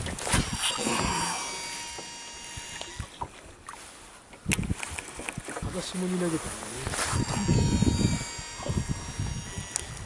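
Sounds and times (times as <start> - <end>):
reel clicks: 0.0 - 3.4, 4.3 - 5.6, 7.1 - 10.0
fishing reel spool whine: 0.2 - 3.6, 7.0 - 10.0.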